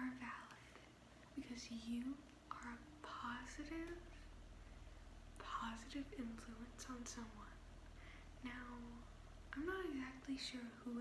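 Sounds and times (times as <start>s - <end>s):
woman whispering softly: 0.0s - 0.8s, 1.4s - 4.2s, 5.4s - 7.6s
faint low hum: 0.0s - 11.0s.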